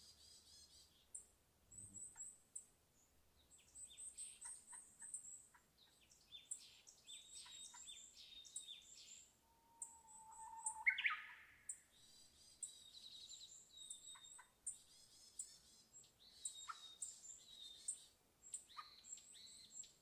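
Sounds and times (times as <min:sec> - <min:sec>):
small birds chirping: 0:00.0 - 0:20.0
bird call rising in pitch: 0:09.5 - 0:11.5.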